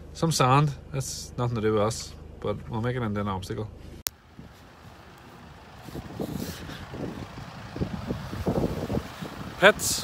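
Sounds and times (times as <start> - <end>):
wind buffeting microphone: 4.2 - 10.0.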